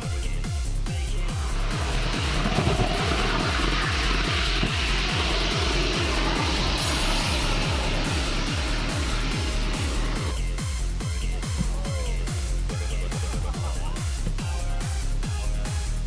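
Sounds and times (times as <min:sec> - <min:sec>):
electronic music with thumping beat: 0:00.0 - 0:16.0
rocket motor roaring: 0:00.8 - 0:11.0.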